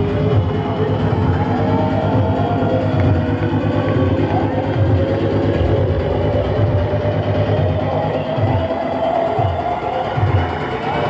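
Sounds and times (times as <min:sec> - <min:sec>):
loud trance music: 0:00.0 - 0:11.0.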